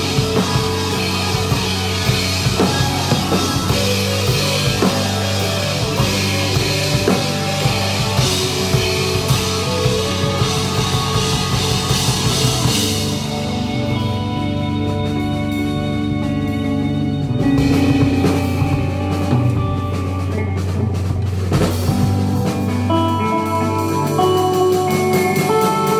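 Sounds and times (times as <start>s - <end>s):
violin: 0.0s - 20.5s
bass guitar: 0.0s - 25.9s
drum kit with cymbals: 0.0s - 25.9s
electric guitar: 0.0s - 25.9s.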